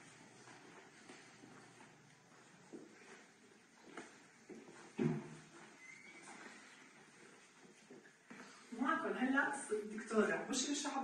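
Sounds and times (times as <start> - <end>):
faint room noise: 0.0 - 11.0
thin squeak: 5.8 - 6.8.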